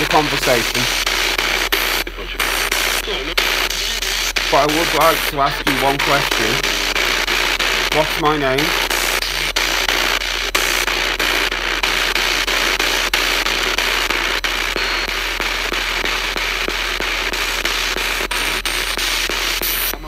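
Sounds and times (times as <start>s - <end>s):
radio clicks: 0.0s - 20.0s
radio static hiss: 0.0s - 20.0s.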